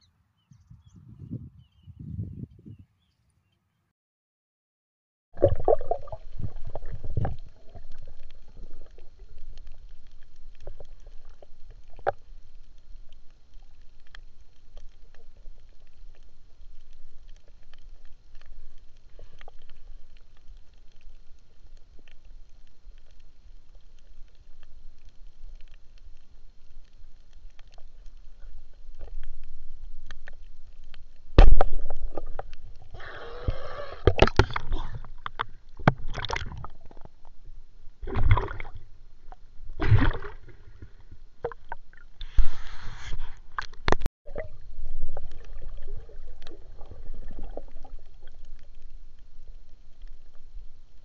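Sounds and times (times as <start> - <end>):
water sloshing and splashing: 5.4 - 12.2, 34.0 - 49.0.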